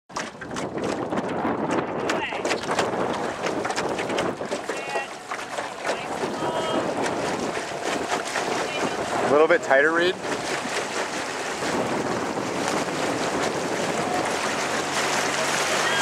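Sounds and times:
paddles splashing water: 0.1s - 16.0s
wind on microphone: 0.1s - 16.0s
people shouting: 4.7s - 7.0s, 15.3s - 16.0s.

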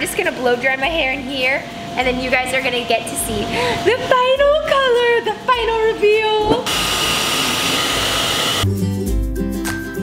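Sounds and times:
hair dryer blowing: 6.4s - 8.7s
music with bass beat: 8.6s - 10.0s.

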